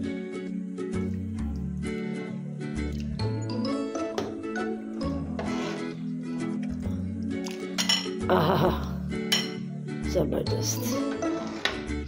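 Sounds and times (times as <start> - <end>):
background music: 0.0 - 12.0
ladle clinking against glass bowl: 7.8 - 8.2, 9.3 - 9.6.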